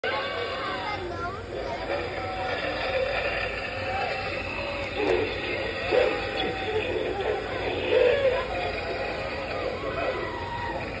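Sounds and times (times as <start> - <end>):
indistinct voices talking: 0.0 - 11.0
low background hum: 0.0 - 11.0.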